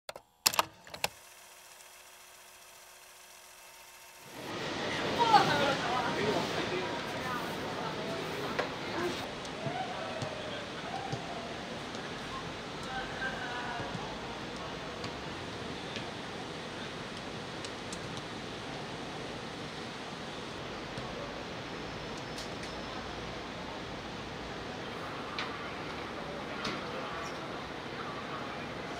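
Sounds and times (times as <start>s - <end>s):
open-air ambience hiss: 0.1s - 28.9s.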